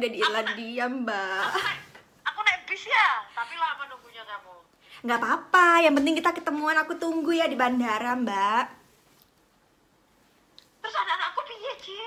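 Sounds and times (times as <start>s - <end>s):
woman speaking over phone speaker: 0.0s - 8.8s, 10.8s - 12.0s.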